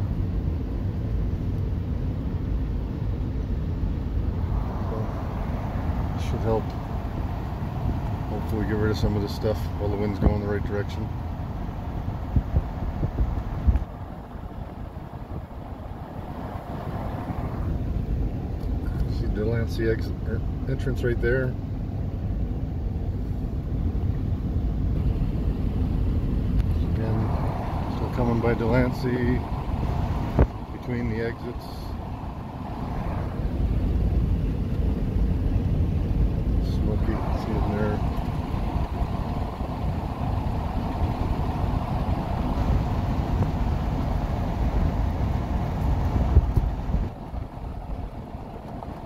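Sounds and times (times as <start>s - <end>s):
road noise rumble: 0.0s - 49.0s
wind gusts on microphone: 0.0s - 49.0s.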